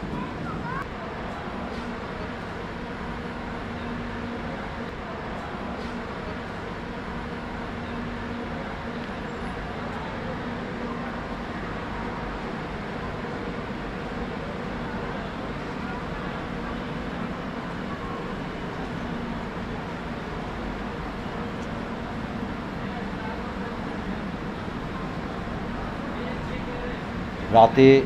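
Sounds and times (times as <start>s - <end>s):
faint murmur of voices: 0.0s - 28.0s.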